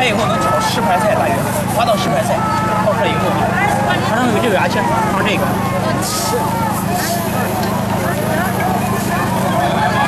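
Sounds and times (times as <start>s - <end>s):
crowd chatter: 0.0s - 10.0s
low engine hum: 0.0s - 10.0s.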